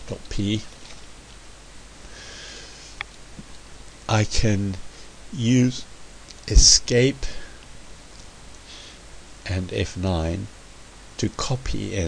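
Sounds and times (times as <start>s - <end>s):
person breathing in through nose: 2.0s - 3.0s.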